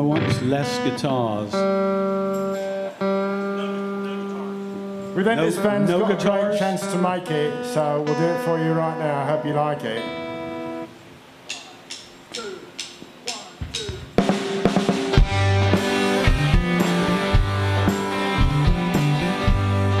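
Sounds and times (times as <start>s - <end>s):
rock band playing: 0.0s - 10.9s, 14.1s - 20.0s
count-in clicks: 11.4s - 14.0s.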